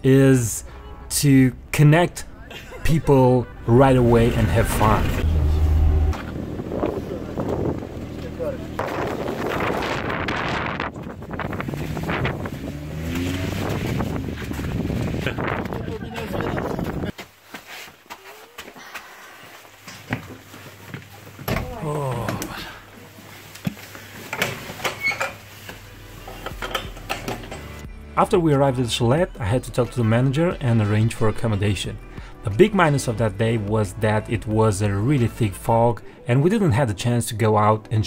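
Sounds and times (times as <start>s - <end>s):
wind buffeting microphone: 5.2s - 17.2s
rustling of jackets and backpacks: 7.2s - 27.8s.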